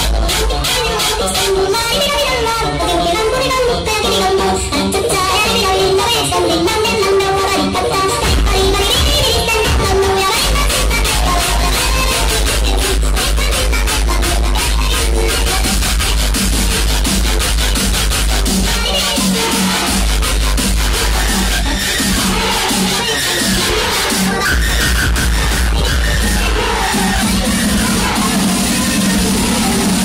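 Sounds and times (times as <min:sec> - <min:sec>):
electronic dance music: 0:00.0 - 0:30.0.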